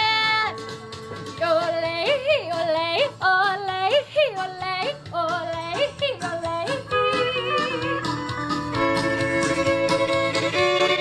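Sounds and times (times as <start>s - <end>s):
woman yodeling: 1.4s - 4.9s, 5.6s - 8.1s
bowed fiddle: 6.7s - 11.0s.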